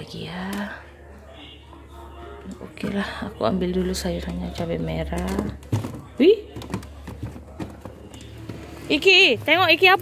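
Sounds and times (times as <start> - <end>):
plastic containers knocking and clicking: 4.2 - 10.0.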